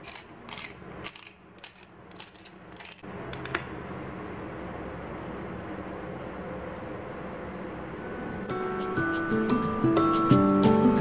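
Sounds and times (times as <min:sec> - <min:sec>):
spice grinder ratcheting: 0:00.0 - 0:03.0.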